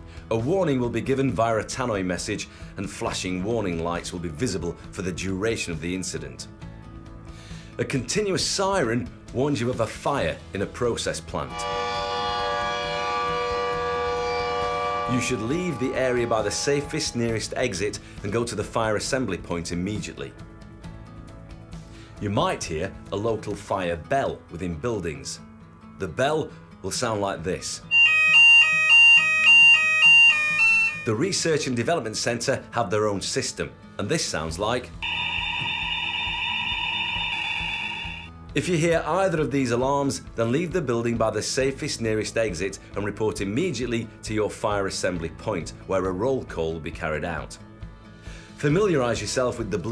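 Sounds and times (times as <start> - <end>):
steady fire siren: 11.5 - 17.3, 27.9 - 31.1, 35.0 - 38.3.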